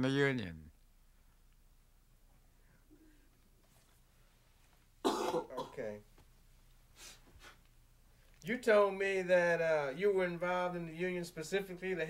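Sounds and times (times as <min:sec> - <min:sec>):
person clearing throat: 0:05.0 - 0:06.0.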